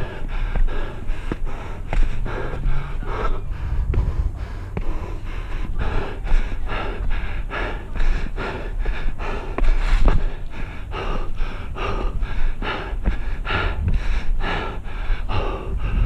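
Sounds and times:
person panting: 0.0 - 16.0.

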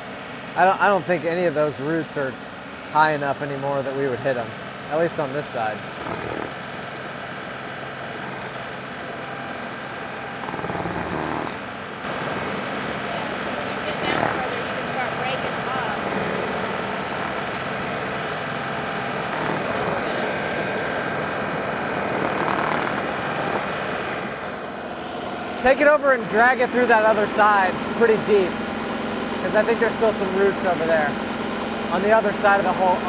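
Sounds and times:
tractor diesel engine running: 0.0 - 33.0
stump grinder grinding roots: 5.9 - 6.6, 7.4 - 33.0.

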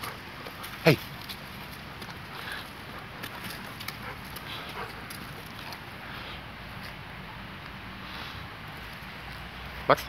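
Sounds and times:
scuffs on dirt and leaves: 0.0 - 7.7
small dog sounds: 2.4 - 5.8.

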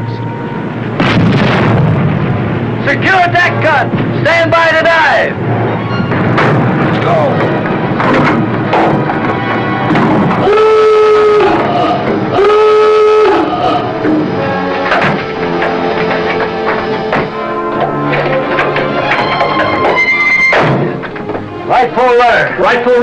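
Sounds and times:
submarine diving alarm blasts: 0.0 - 1.0, 7.8 - 22.0
dramatic music score: 0.0 - 23.0
knocks and clatter: 5.5 - 10.5, 14.0 - 21.6.

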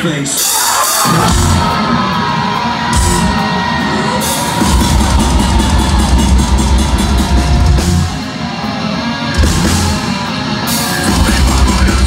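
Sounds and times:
distorted guitars: 0.0 - 12.0
drums and bass beat: 0.0 - 12.0.

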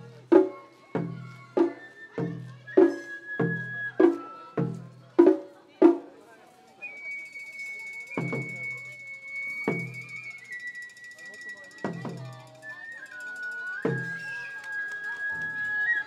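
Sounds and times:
bamboo flute long high notes: 1.2 - 4.8, 6.8 - 16.0.

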